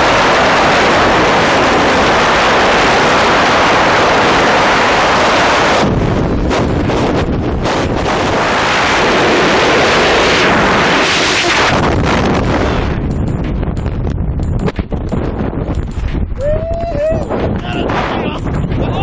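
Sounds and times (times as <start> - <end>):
wind roaring over microphone: 0.0 - 19.0.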